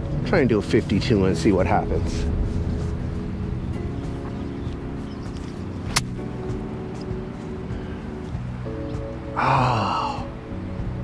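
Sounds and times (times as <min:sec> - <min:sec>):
background music: 0:00.0 - 0:11.0
golf club striking ball: 0:05.4 - 0:06.2.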